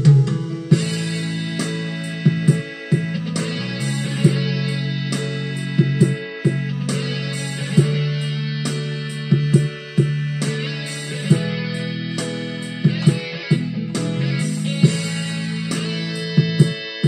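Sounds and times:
bass line: 0.0s - 16.9s
sustained guitar chords: 0.0s - 17.0s.

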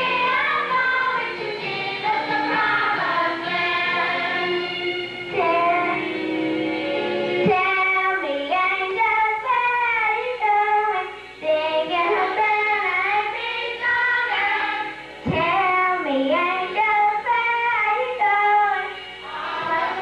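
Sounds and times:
children singing together: 0.0s - 6.3s, 10.8s - 20.0s.

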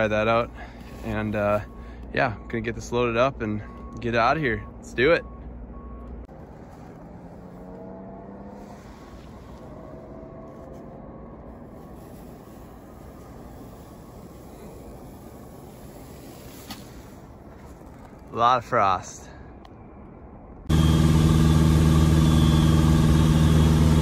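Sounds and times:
distant engine hum: 0.0s - 24.0s
faint drone: 5.8s - 18.2s.

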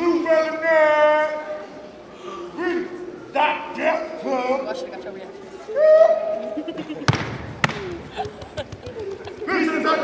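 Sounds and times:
stomp or clap hits: 7.1s - 9.4s.

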